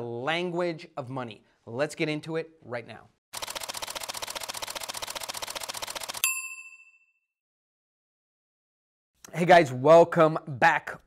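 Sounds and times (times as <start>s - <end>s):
fast even clicking: 3.4s - 6.2s
bright ding: 6.2s - 7.2s.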